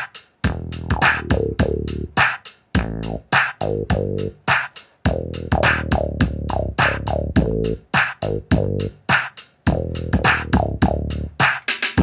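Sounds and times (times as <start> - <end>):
drum machine hits: 0.0 - 12.0
rolling synth bass line: 0.5 - 2.2, 2.8 - 4.4, 5.1 - 9.0, 9.7 - 11.4.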